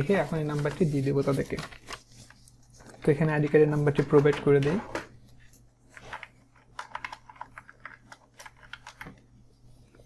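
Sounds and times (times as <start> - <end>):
computer keyboard typing: 6.6 - 9.2.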